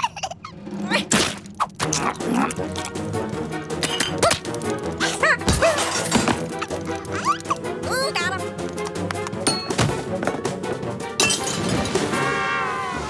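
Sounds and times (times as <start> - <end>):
light background music: 0.2 - 13.0.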